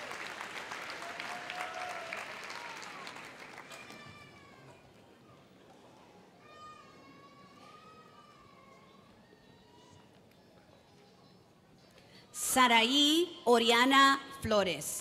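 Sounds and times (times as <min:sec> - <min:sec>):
audience applause and cheering: 0:00.0 - 0:04.6.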